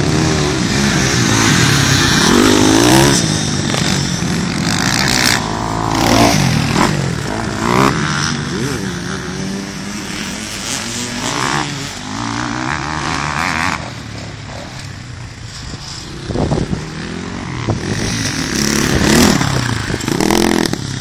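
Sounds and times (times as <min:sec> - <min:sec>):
dirt bikes revving: 0:00.0 - 0:21.0.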